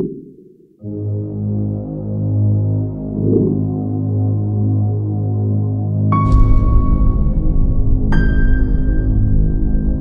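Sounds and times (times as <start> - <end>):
ambient low drone: 0.8 - 10.0.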